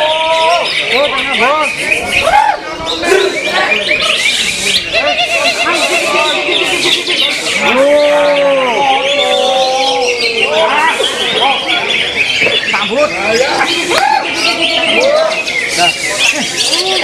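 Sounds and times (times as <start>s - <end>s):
long low human shout: 0.0s - 0.7s, 2.2s - 3.6s, 7.6s - 11.0s, 13.8s - 15.4s
birds singing warbling phrases: 0.0s - 17.0s.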